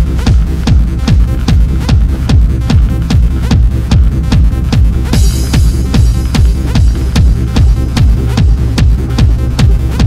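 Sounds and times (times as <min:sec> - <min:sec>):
driving kick-drum beat: 0:00.0 - 0:10.0
electronic dance music: 0:00.0 - 0:10.0.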